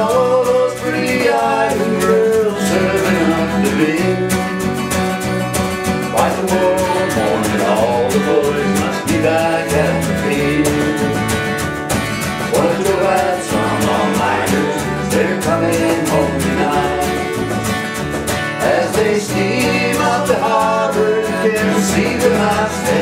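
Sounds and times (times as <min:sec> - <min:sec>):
cajon beat: 0:00.0 - 0:23.0
electric bass: 0:00.0 - 0:23.0
keyboard: 0:00.0 - 0:23.0
strummed acoustic guitar: 0:00.0 - 0:23.0.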